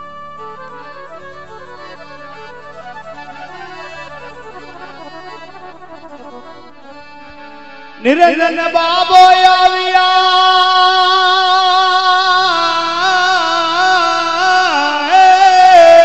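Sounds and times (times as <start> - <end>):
harmonium and keyboard melody: 0.0 - 16.0.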